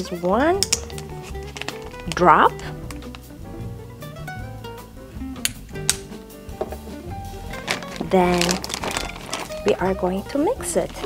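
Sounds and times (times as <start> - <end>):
plucked string tune: 0.0 - 11.0.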